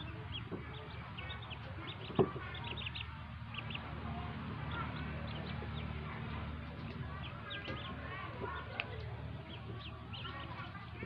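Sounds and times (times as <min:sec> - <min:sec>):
ducklings peeping: 0:00.0 - 0:11.0.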